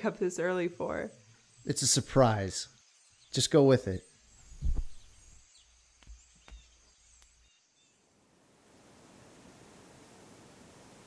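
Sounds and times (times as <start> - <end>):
outdoor background hiss: 0.0 - 11.0
dull thump: 4.6 - 5.1.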